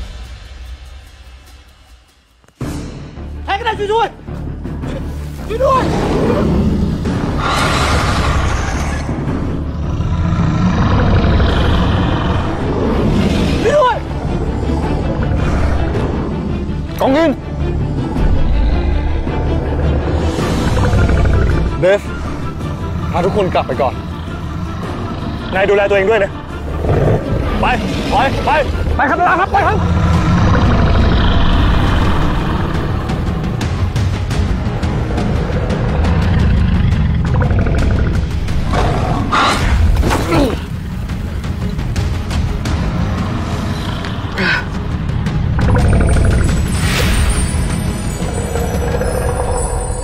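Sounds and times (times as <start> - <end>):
dramatic action film score: 0.0 - 50.0
deep rumbling: 5.8 - 50.0.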